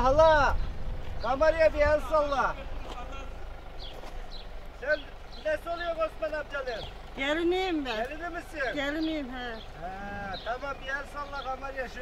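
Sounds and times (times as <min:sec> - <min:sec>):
faint voices: 0:04.7 - 0:12.0.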